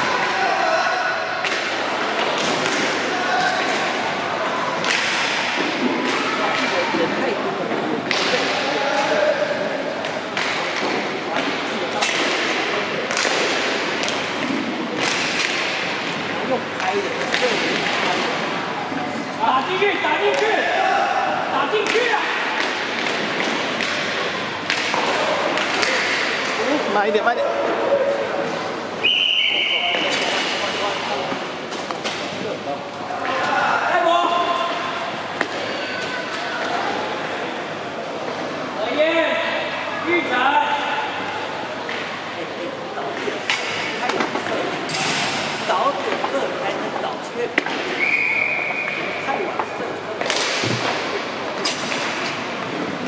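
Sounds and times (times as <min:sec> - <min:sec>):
hockey sticks and puck knocking: 0:10.0 - 0:16.2, 0:21.8 - 0:26.4.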